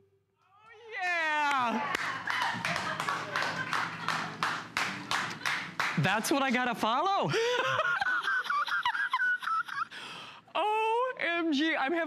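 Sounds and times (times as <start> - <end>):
hands clapping: 1.4 - 6.6.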